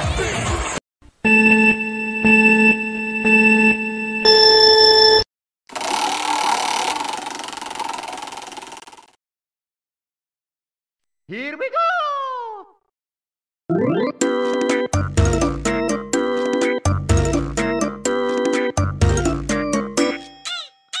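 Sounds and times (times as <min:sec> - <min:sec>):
electronic ringing tone: 0:01.2 - 0:05.3
prize wheel clicking rattle: 0:05.8 - 0:09.1
background music: 0:13.7 - 0:20.3.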